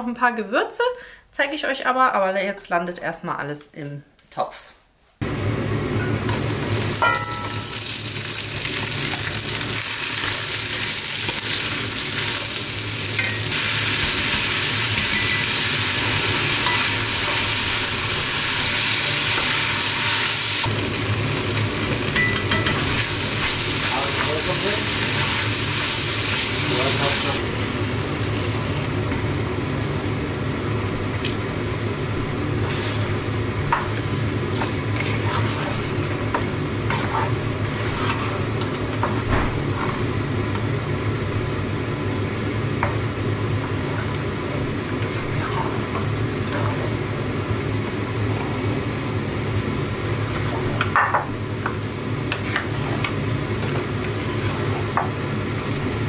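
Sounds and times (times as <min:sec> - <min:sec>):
vegetables sizzling in a pot: 0:05.7 - 0:56.0.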